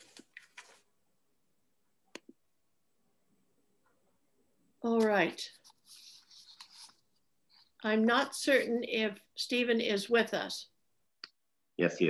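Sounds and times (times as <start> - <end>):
woman speaking: 4.8 - 5.6, 7.8 - 10.7
soft rustling: 5.0 - 7.8.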